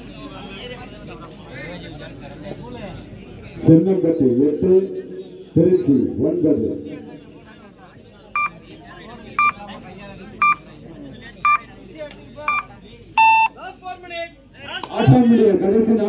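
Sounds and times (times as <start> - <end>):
faint crowd voices: 0.0 - 16.0
short electronic beeps: 8.4 - 8.6, 9.4 - 9.6, 12.5 - 13.5
long low beep: 13.2 - 13.5.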